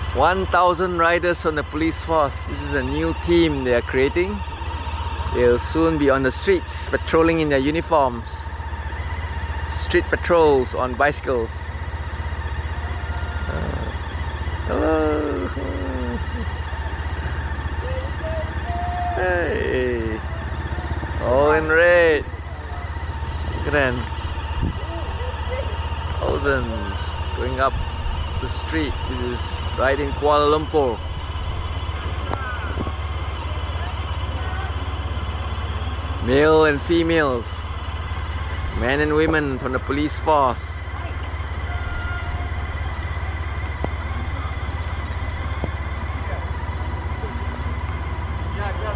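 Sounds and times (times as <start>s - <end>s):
engine idling: 0.0s - 48.9s
faint voices: 12.8s - 48.9s.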